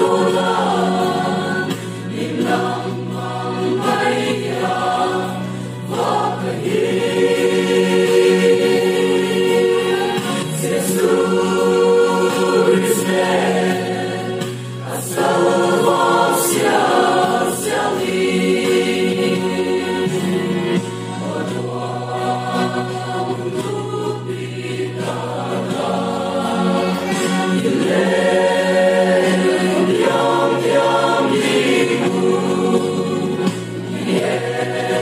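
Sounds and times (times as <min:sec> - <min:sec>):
mixed choir singing gospel: 0:00.0 - 0:35.0.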